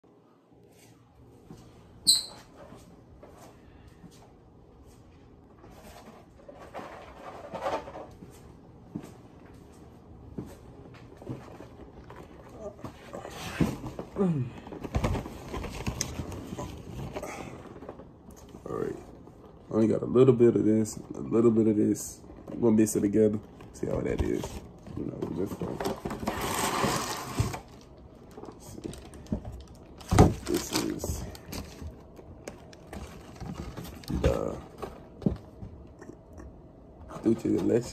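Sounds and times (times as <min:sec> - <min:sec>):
cardboard boxes rustling: 0:11.0 - 0:18.1, 0:22.3 - 0:35.8.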